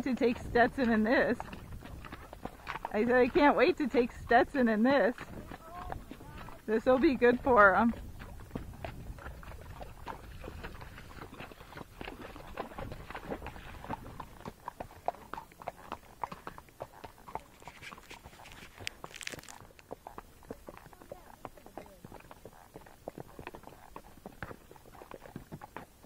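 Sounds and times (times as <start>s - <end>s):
hoofbeats on dirt: 0.0s - 26.0s.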